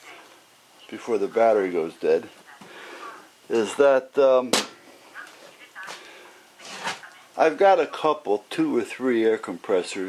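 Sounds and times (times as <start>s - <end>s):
man breathing: 2.6s - 3.4s.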